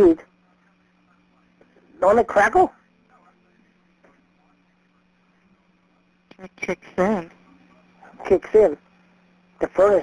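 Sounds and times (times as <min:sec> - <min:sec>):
faint low telephone line hum: 0:00.0 - 0:10.0.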